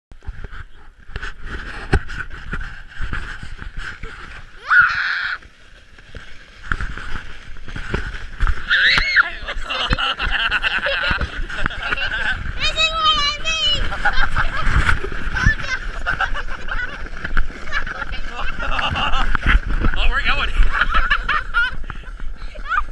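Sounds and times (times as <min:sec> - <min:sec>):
sled scraping over snow: 0:00.2 - 0:22.9
riders laughing: 0:09.1 - 0:12.6, 0:13.6 - 0:22.9.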